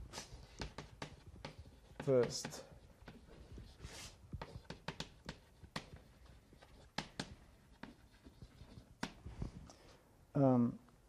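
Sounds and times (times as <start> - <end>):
chalk scratching: 0.0 - 9.2
chalk tapping on blackboard: 0.1 - 9.2.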